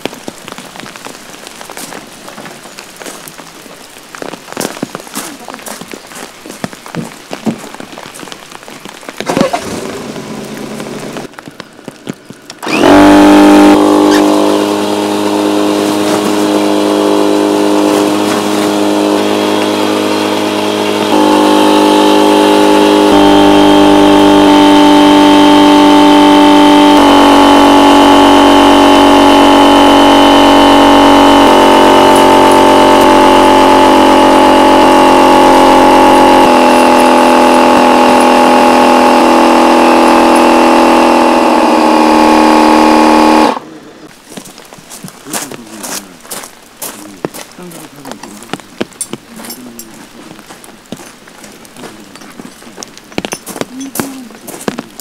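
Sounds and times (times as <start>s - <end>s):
electric air pump motor hum: 12.6s - 43.8s.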